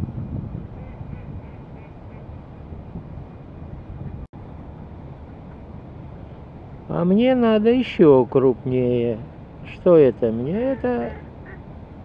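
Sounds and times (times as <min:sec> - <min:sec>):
low outdoor rumble: 0:00.0 - 0:12.0
faint duck calls: 0:10.6 - 0:11.6.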